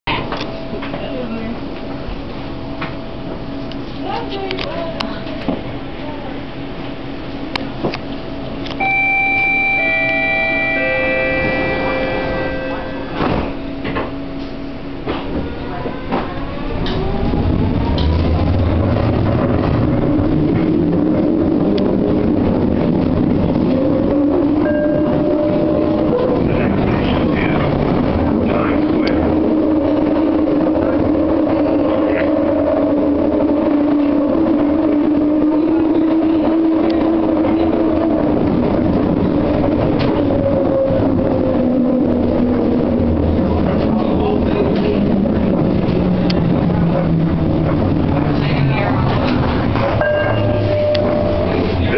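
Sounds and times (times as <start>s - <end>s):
train car whine and hum: 0.0s - 51.9s
chime tones: 8.8s - 13.7s, 50.0s - 51.8s.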